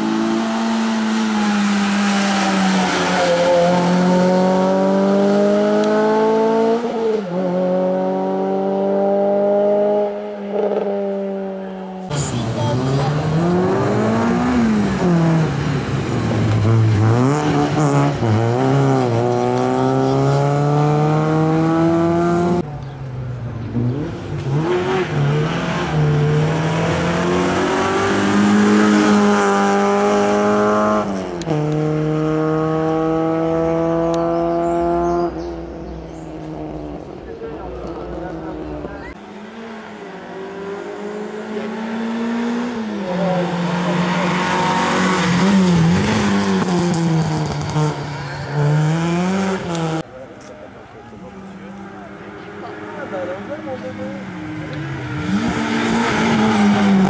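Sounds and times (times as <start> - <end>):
racing car engines revving: 0.0 - 57.0.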